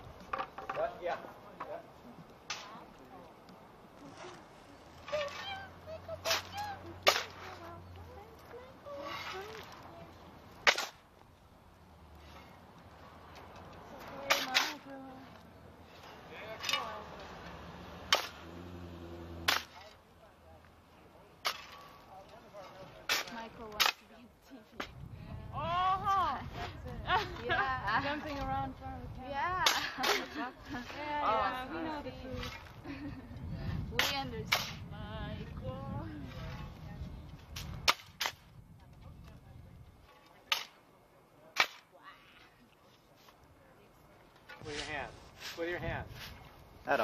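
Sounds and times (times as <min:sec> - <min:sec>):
shovels digging into soil: 0:04.0 - 0:11.2, 0:13.4 - 0:14.9, 0:15.8 - 0:20.0, 0:21.4 - 0:24.2, 0:29.6 - 0:31.0, 0:34.0 - 0:34.8, 0:37.3 - 0:38.5, 0:41.5 - 0:41.9, 0:44.5 - 0:46.6
sharp cracks: 0:10.6 - 0:11.1, 0:18.0 - 0:18.6, 0:19.4 - 0:19.8
blade striking ground: 0:10.6 - 0:11.2, 0:18.0 - 0:20.0, 0:21.4 - 0:24.1, 0:37.4 - 0:38.5.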